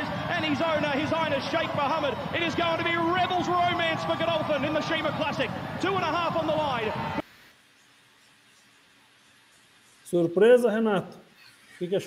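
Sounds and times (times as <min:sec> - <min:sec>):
horse race commentator calling: 0:00.0 - 0:07.2.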